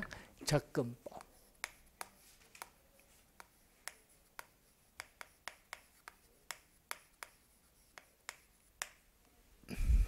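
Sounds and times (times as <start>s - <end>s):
chalk tapping on chalkboard: 1.1s - 9.2s.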